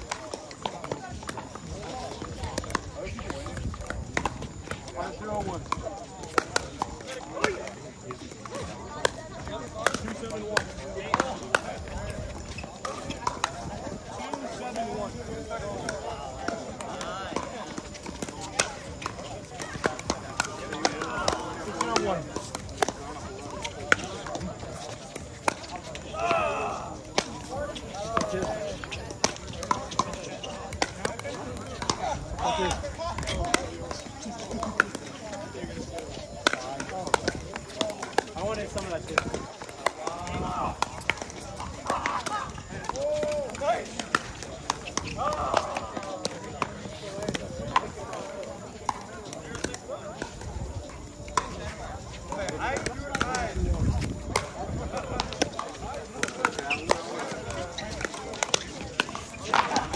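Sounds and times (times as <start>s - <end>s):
paddles hitting plastic ball: 0.0s - 51.7s, 52.3s - 59.9s
people's voices: 0.0s - 59.9s.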